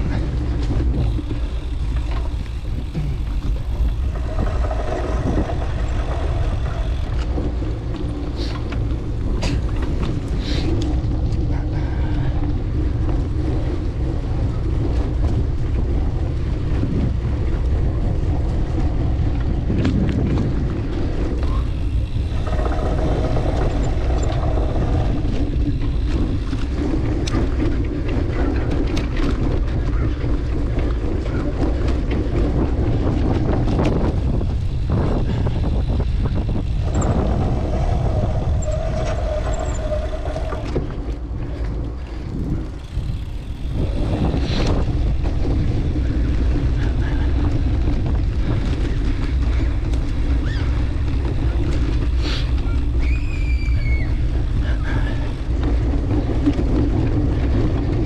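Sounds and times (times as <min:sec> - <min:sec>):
bike clicks and knocks: 0:00.0 - 0:58.0
bike tyres rumbling on grass: 0:00.0 - 0:58.0
wind buffeting microphone: 0:00.0 - 0:58.0.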